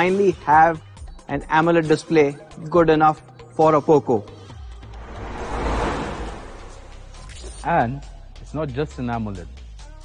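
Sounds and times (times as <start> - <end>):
whoosh transition: 4.7 - 7.6
low rumble: 4.8 - 7.3.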